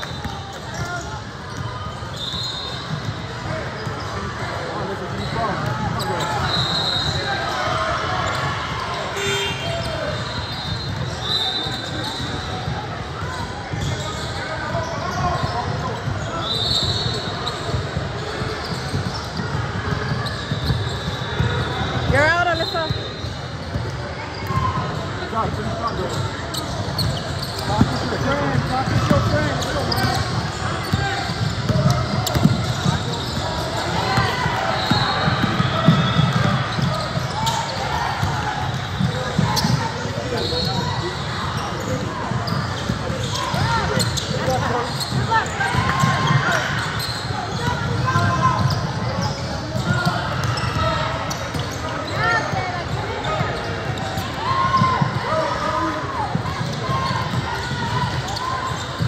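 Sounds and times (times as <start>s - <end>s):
basketball bouncing on wood floor: 30.0s - 34.3s, 34.9s - 37.6s.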